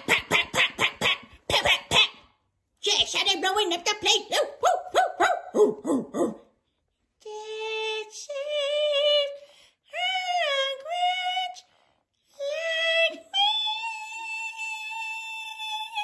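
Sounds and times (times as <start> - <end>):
high voice singing long notes: 7.2 - 11.7, 12.3 - 16.0.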